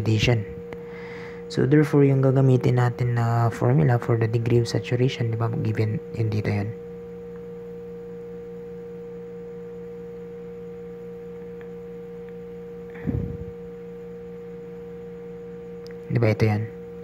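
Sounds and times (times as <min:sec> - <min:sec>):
electrical hum: 0:00.0 - 0:17.0.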